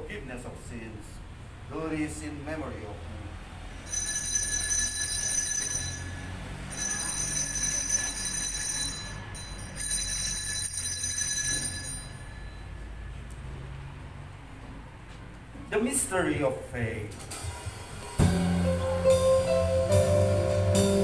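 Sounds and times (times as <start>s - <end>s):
altar bells ringing: 3.8s - 13.2s.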